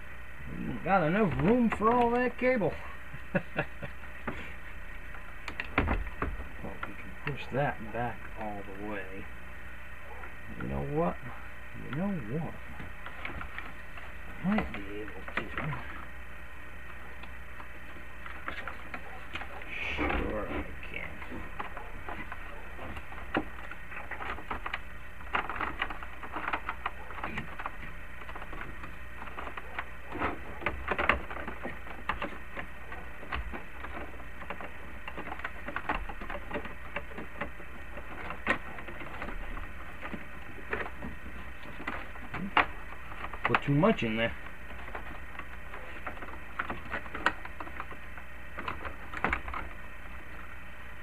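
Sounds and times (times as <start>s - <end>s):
scraping rustle: 0.0s - 51.0s
plastic clicks and knocks: 5.1s - 7.4s, 16.9s - 50.5s.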